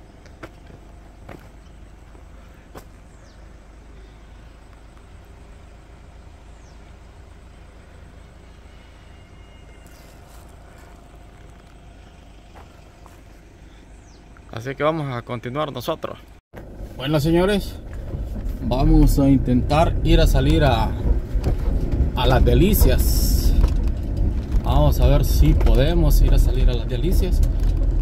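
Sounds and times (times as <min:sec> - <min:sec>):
faint high falling whistles: 0:08.5 - 0:10.3
steady low rumble: 0:16.2 - 0:28.0.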